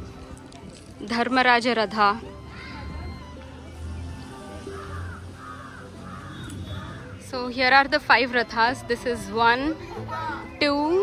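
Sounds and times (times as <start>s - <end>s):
faint music: 0.0s - 11.0s
crow cawing: 4.6s - 7.2s.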